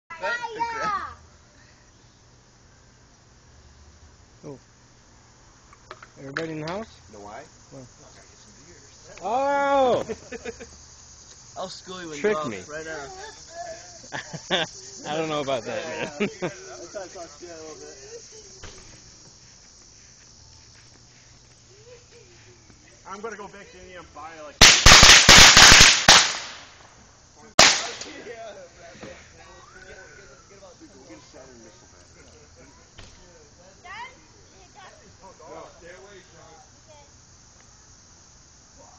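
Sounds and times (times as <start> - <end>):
child speaking: 0.1 - 1.2
faint outdoor background noise: 0.1 - 38.9
firecracker bangs: 24.6 - 27.0, 27.6 - 28.2.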